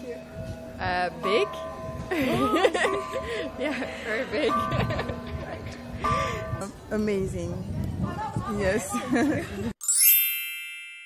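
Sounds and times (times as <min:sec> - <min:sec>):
bright chime: 0:09.8 - 0:11.0.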